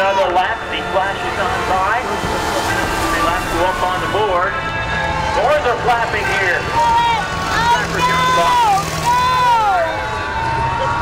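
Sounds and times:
long high-pitched tones: 0.0s - 11.0s
low engine rumble: 0.0s - 11.0s.

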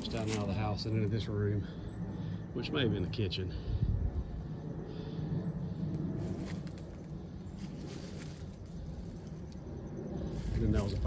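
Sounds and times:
footsteps crunching on dry leaves: 0.0s - 0.8s, 6.2s - 9.6s, 10.2s - 11.0s
steady low microphone rumble: 0.0s - 11.0s.

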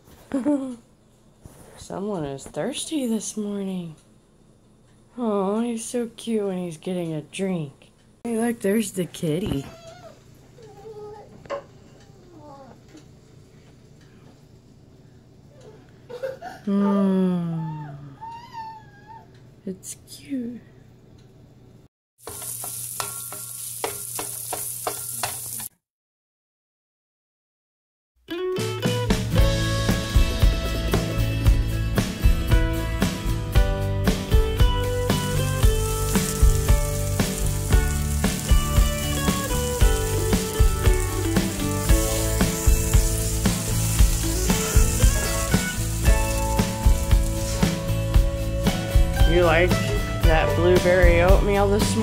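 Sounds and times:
meat sizzling in a pan: 22.2s - 25.7s, 34.2s - 49.5s
spatula scraping and tapping pan: 22.2s - 25.7s
background music with steady beat: 28.3s - 52.0s.

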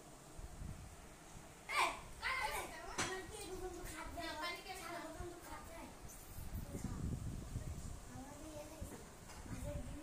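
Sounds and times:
children talking: 1.6s - 10.0s.

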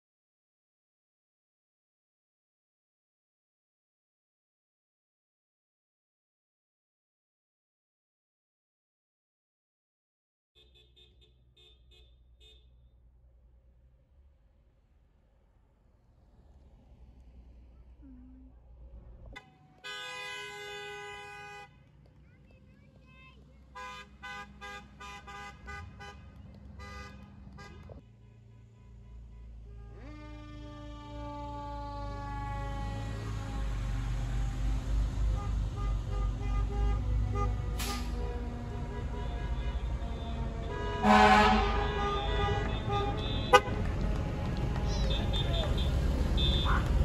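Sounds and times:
car horn blast: 10.6s - 12.8s, 19.3s - 21.8s, 23.7s - 33.7s, 35.1s - 47.0s
short car horn honks: 10.6s - 12.8s, 19.4s - 21.8s, 35.2s - 43.8s
traffic: 10.6s - 47.0s.

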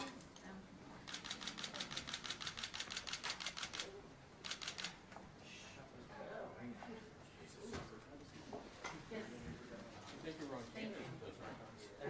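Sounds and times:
camera shutter clicks: 1.1s - 5.0s.

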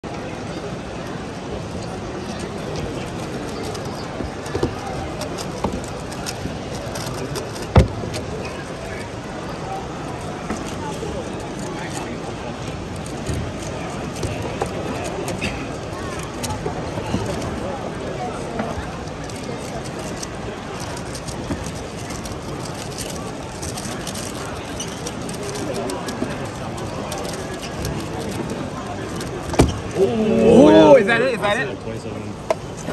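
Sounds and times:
chatter of crowd: 0.0s - 32.9s.

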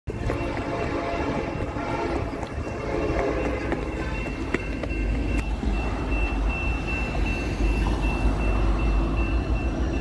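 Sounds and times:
train horn: 0.1s - 4.2s
passing train rumble: 0.1s - 10.0s.

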